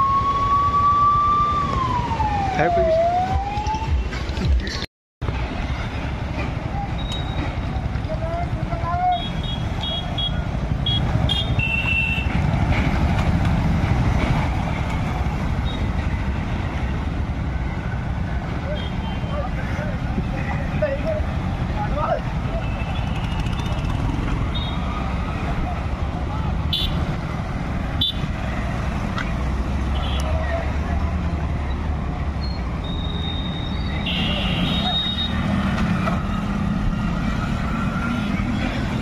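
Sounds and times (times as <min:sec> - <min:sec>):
motorcycle engines rumbling: 0:00.1 - 0:39.0.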